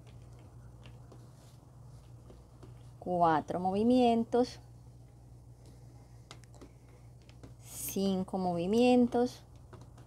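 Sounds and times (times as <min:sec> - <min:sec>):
low steady hum: 0:00.0 - 0:10.0
cord ticking on plastic clipboard: 0:08.7 - 0:10.0.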